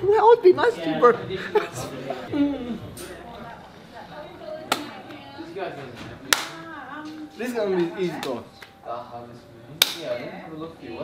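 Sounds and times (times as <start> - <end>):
low background voices: 0.0 - 11.0
hand slap: 4.7 - 4.9, 6.3 - 6.6, 9.8 - 10.1.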